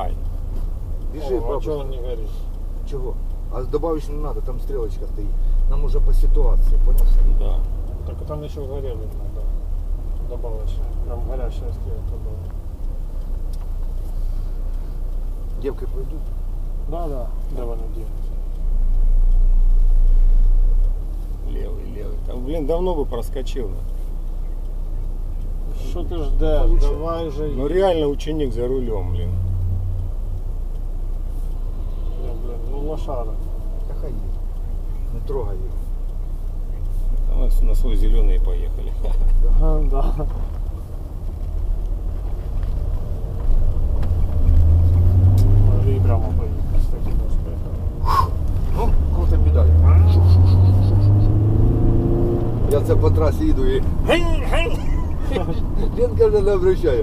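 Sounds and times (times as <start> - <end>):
deep vehicle rumble inside car: 0.0 - 57.0.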